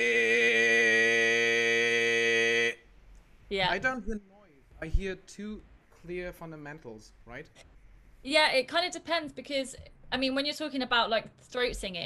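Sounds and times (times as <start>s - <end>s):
man singing distorted steady note: 0.0s - 2.8s.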